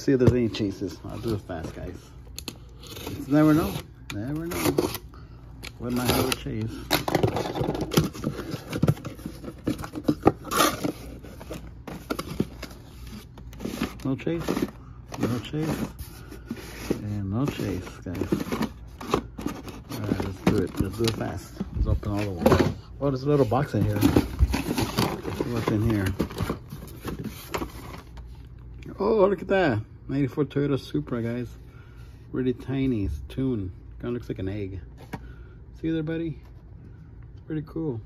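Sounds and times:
low steady hum: 0:00.0 - 0:38.0
cardboard packaging scraping: 0:02.7 - 0:05.1, 0:05.8 - 0:28.2
toy cars handled in box: 0:23.4 - 0:28.0.

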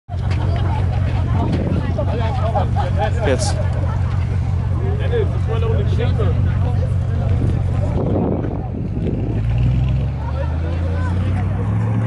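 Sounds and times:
car engine idling: 0:00.1 - 0:12.0
people talking: 0:00.1 - 0:12.0.

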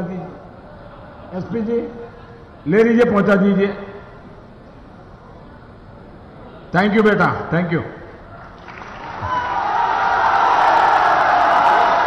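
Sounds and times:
crowd cheering and shouting: 0:08.8 - 0:12.0.

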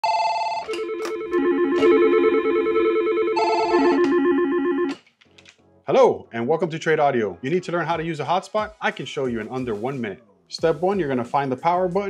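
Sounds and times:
telephone electronic ringtone: 0:00.0 - 0:04.9.

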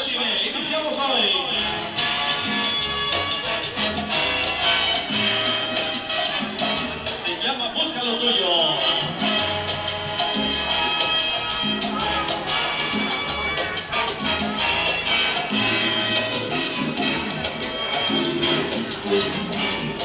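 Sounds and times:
loud salsa music: 0:00.0 - 0:20.0.

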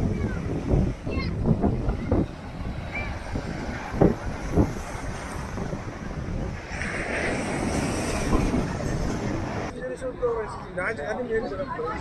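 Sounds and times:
surf washing on shore: 0:00.0 - 0:09.7
wind rumbling on microphone: 0:00.0 - 0:10.4
wave breaking hiss: 0:00.5 - 0:09.7.

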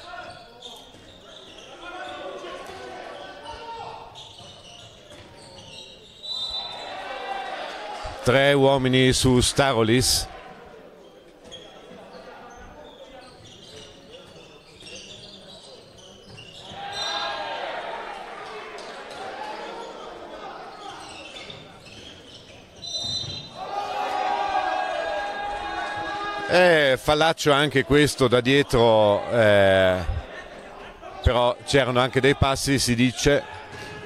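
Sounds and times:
people shouting: 0:16.8 - 0:20.3, 0:23.6 - 0:26.5.

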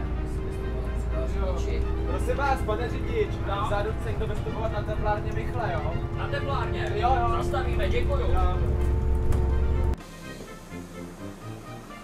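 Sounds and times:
voices: 0:00.0 - 0:08.9
bus engine and road noise: 0:00.0 - 0:10.0
background music: 0:00.0 - 0:12.0.

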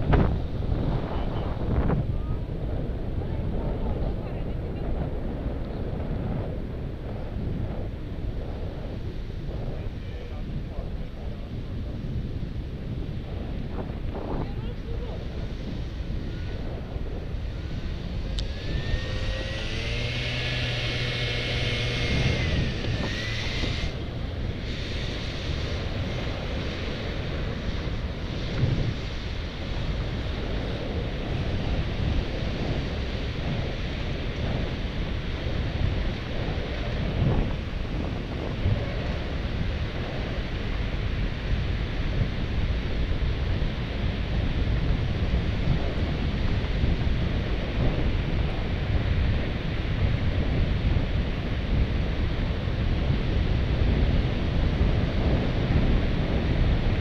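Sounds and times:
pitched hum with high whine: 0:00.0 - 0:57.0
street traffic noise: 0:00.0 - 0:57.0
wind rumbling on microphone: 0:00.0 - 0:57.0.

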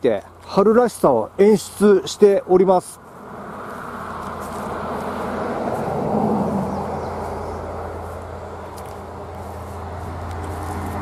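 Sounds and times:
road vehicle passing: 0:00.3 - 0:11.0.

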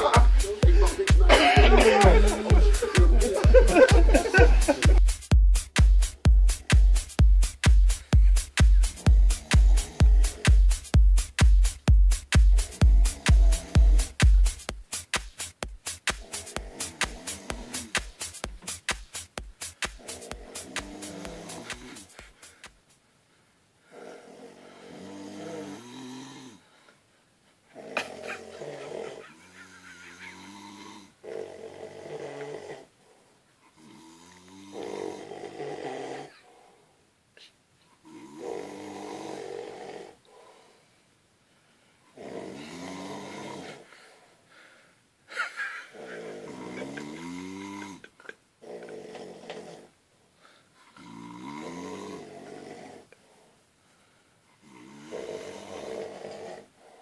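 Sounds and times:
man snoring heavily: 0:08.9 - 0:10.8, 0:12.6 - 0:14.2, 0:16.2 - 0:18.0, 0:20.0 - 0:22.1, 0:23.9 - 0:26.7, 0:27.7 - 0:32.9, 0:33.8 - 0:36.4, 0:38.0 - 0:40.6, 0:42.2 - 0:43.9, 0:45.8 - 0:50.0, 0:51.0 - 0:53.1, 0:54.6 - 0:57.0.

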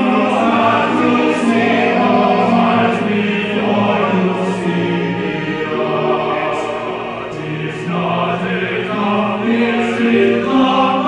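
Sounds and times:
male opera chorus singing: 0:00.0 - 0:11.0.

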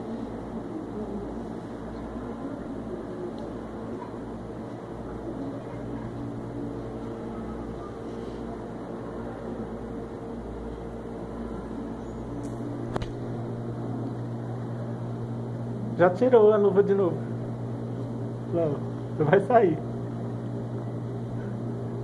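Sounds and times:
low mechanical hum: 0:00.0 - 0:22.0.

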